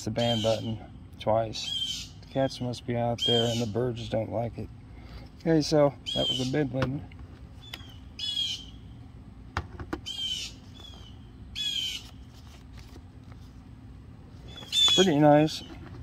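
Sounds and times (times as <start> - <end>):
bird alarm calls: 0.2 - 0.8, 1.6 - 2.5, 3.1 - 4.0, 6.0 - 6.7, 7.6 - 9.0, 10.0 - 12.2, 14.4 - 15.8.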